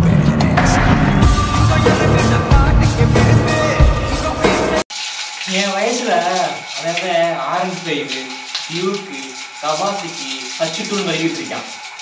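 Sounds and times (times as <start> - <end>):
man speaking: 5.5 - 11.7.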